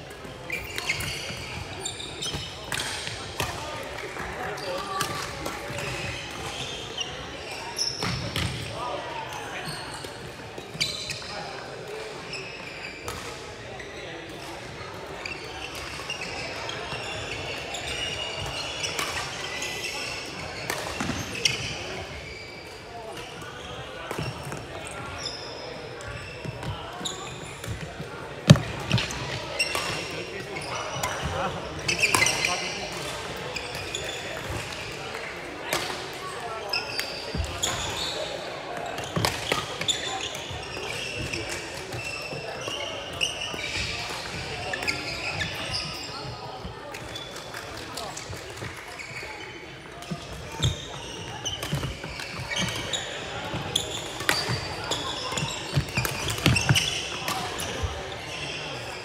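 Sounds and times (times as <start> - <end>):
sneaker squeaks on court floor: 0.0 - 59.0.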